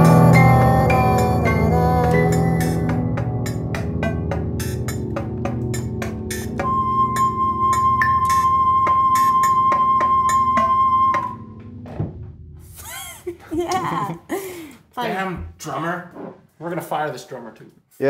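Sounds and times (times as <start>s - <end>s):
high held tone: 6.3s - 11.8s.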